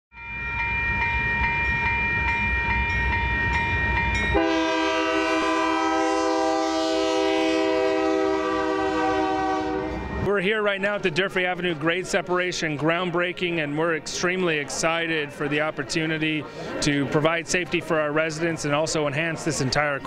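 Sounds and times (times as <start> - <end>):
crossing bell ringing: 0.1 - 13.7
train air horn blast: 4.3 - 10.1.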